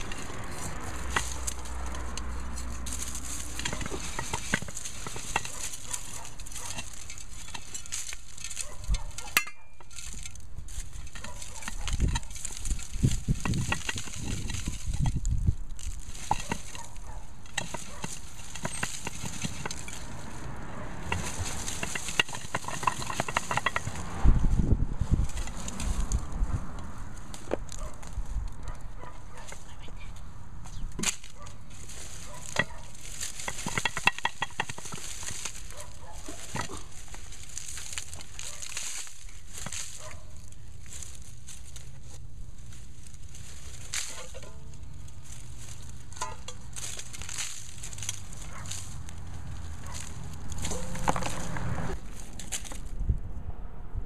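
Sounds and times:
heavy handling bumps: 0.0s - 53.0s
soil scraping: 0.0s - 53.1s
dry stems crackling and rustling: 0.0s - 53.2s.

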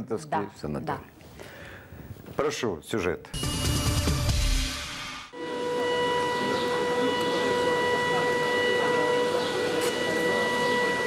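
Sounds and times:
alarm siren steady tone: 5.2s - 11.0s
constant background noise: 5.4s - 11.0s.

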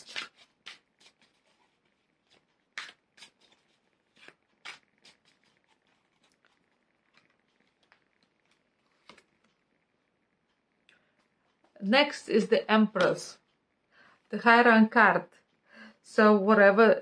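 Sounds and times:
cards clicking and rustling: 0.0s - 9.5s.

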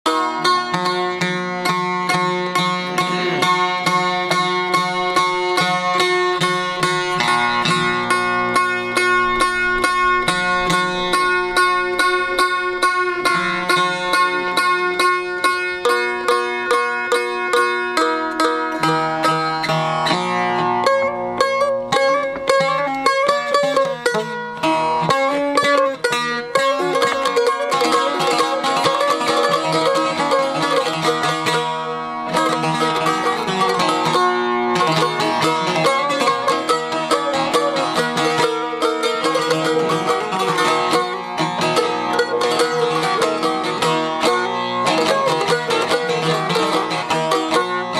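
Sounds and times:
plucked lute folk tune: 0.0s - 47.9s.

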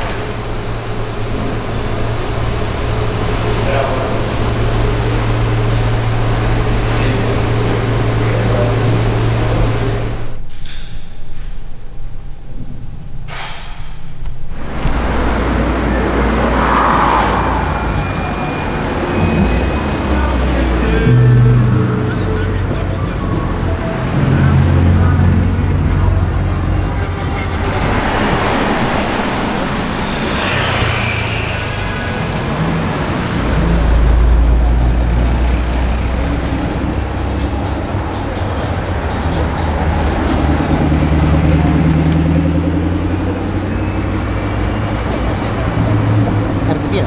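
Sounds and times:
cars driving past: 14.5s - 47.0s.

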